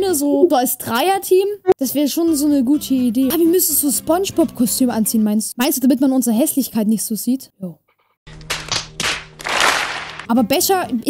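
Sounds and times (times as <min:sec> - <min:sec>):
audience applauding: 0:08.5 - 0:10.3.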